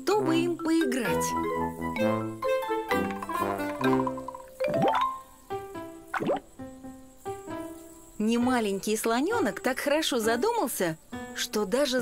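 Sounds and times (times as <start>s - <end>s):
light background music: 0.0s - 12.0s
cartoon water drop plop: 3.1s - 5.2s, 6.1s - 6.5s.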